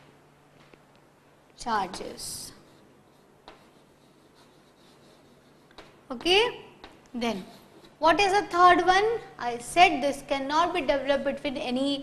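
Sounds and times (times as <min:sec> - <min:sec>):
chalk writing on a blackboard: 0:01.8 - 0:08.0.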